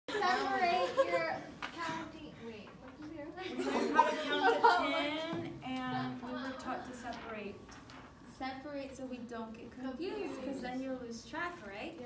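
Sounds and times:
women talking and laughing: 0:00.1 - 0:07.6, 0:09.8 - 0:11.1.

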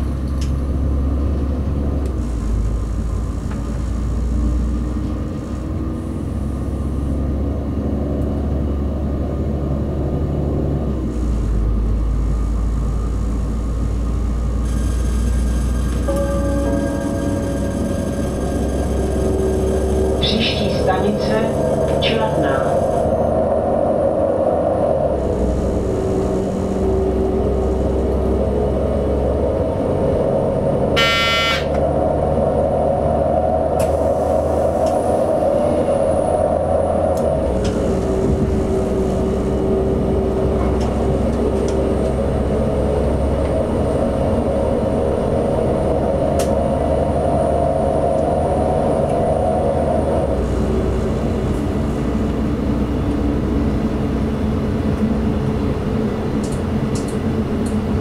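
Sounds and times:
diesel railcar engine drone: 0:00.0 - 0:58.0
wheel and rail noise: 0:00.0 - 0:58.0
brief high-pitched tone: 0:16.0 - 0:19.4, 0:31.0 - 0:31.8.

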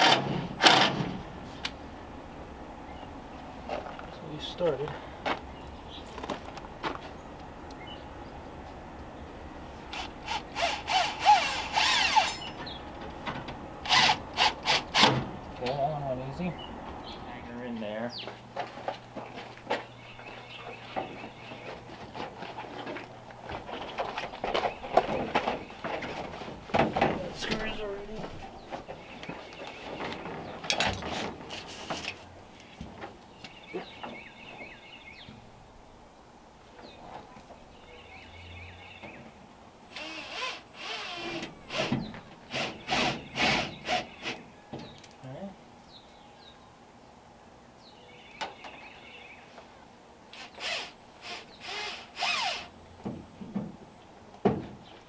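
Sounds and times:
knocks and rattles of panels: 0:12.6 - 0:13.6, 0:21.0 - 0:32.0, 0:53.0 - 0:55.0
cordless drill running: 0:50.4 - 0:52.7.

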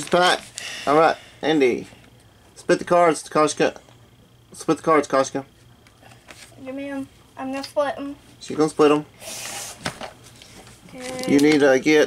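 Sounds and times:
foil wrapper rustling: 0:10.3 - 0:11.8.

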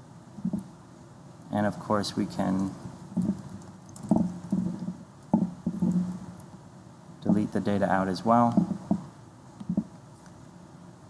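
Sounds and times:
typing on laptop keyboard: 0:02.6 - 0:06.1.

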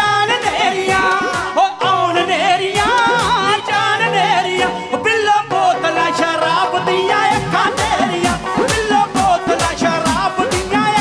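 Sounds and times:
band with drum kit and bass: 0:00.0 - 0:11.0
men singing ornamented vocals: 0:00.0 - 0:11.0.

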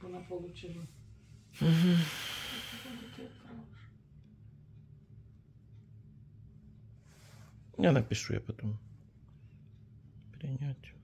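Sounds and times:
person exhaling breathily: 0:01.6 - 0:03.2.

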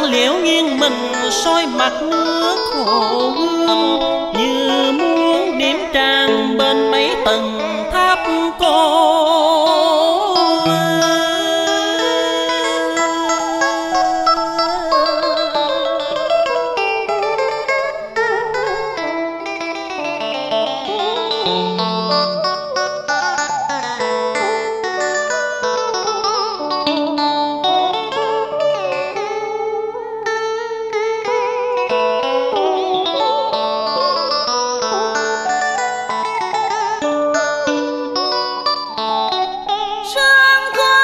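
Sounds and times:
plucked string instruments: 0:00.0 - 0:41.0.

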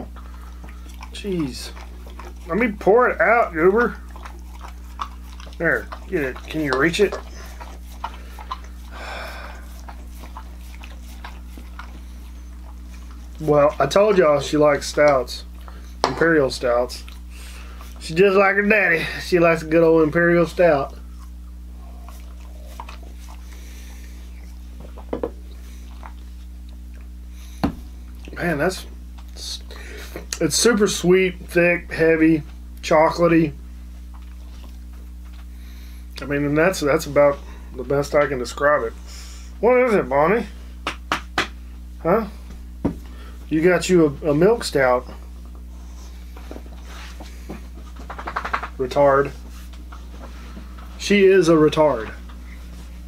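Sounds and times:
faint wet smacks and clicks: 0:00.0 - 0:16.4, 0:17.0 - 0:18.0, 0:20.8 - 0:27.1, 0:29.1 - 0:29.4
low electrical hum: 0:00.0 - 0:53.0.

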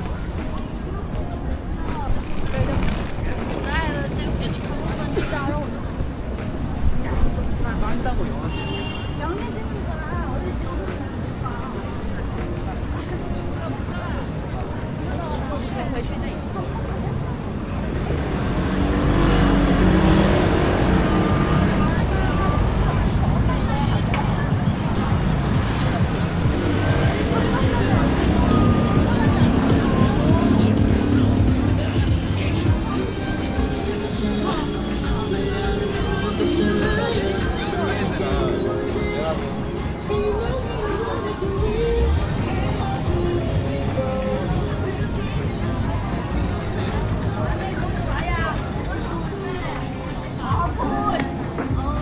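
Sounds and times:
low city rumble: 0:00.0 - 0:52.0
voices of passers-by: 0:00.0 - 0:52.0.

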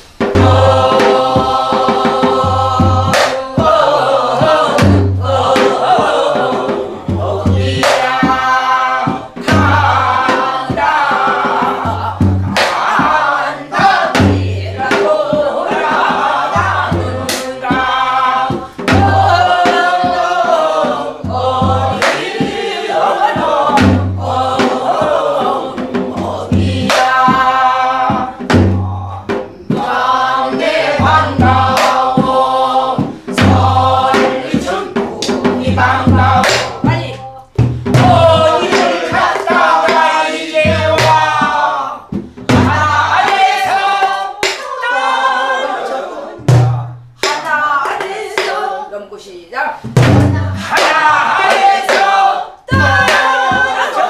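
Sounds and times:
barrel drum strokes: 0:00.1 - 0:45.0
deep drumhead thud: 0:31.0 - 0:43.6, 0:49.9 - 0:52.0.

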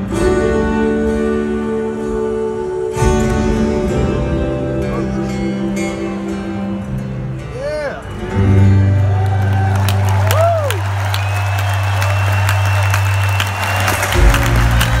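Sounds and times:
crowd cheering: 0:08.6 - 0:15.0.

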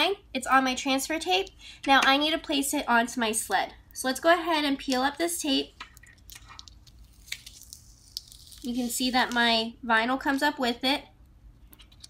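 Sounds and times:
tape peeling with soft crackling: 0:05.8 - 0:09.4.

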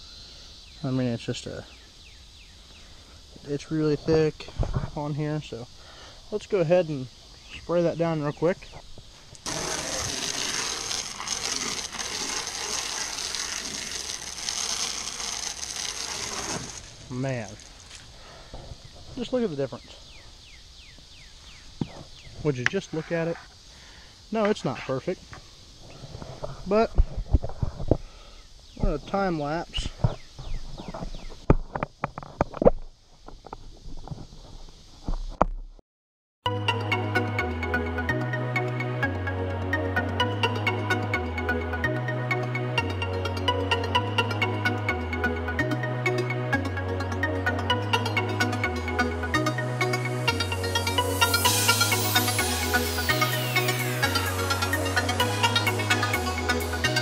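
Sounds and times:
hose water spraying on boat hull: 0:09.5 - 0:17.9.

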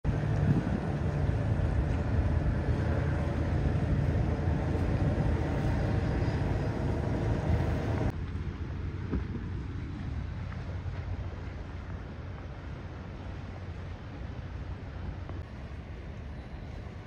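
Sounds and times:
boat engines rumbling: 0:00.0 - 0:17.0.

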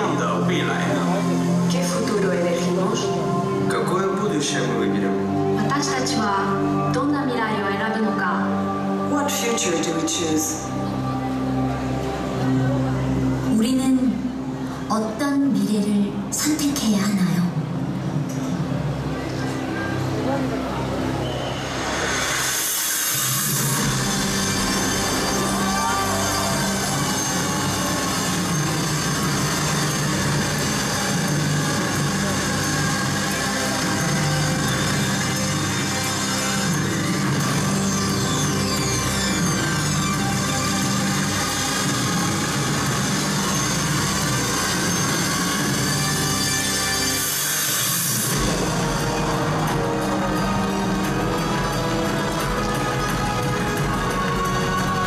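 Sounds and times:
music: 0:00.0 - 0:55.0.

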